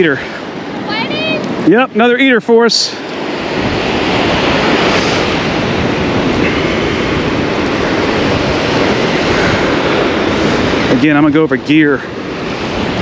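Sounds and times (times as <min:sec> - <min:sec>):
ocean surf breaking: 0:00.0 - 0:13.0
wind buffeting microphone: 0:00.0 - 0:13.0.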